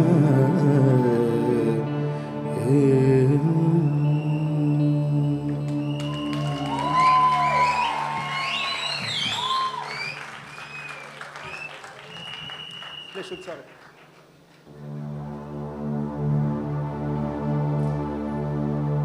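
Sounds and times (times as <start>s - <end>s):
person singing: 0.0s - 7.8s
audience applause and cheers: 5.6s - 14.5s.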